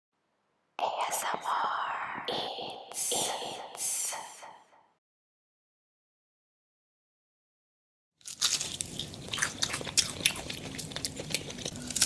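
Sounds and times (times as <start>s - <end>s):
person whispering: 0.8s - 5.0s.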